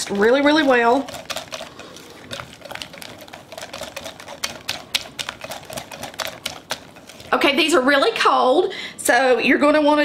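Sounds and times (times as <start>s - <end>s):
whisk clicking against glass bowl: 0.0s - 7.4s.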